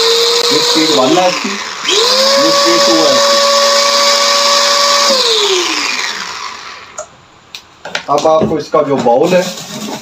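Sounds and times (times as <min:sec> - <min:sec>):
electric motor whine winding down: 0:00.0 - 0:07.0.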